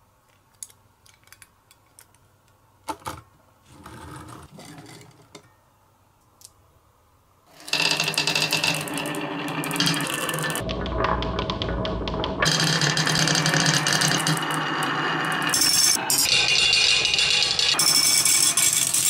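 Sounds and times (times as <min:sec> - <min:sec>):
marbles rattling down wooden tracks: 0:07.6 - 0:19.0.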